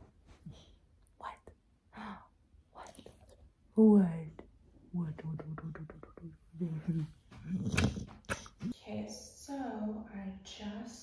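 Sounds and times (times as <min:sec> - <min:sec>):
dog making rough noise: 0:07.4 - 0:08.7.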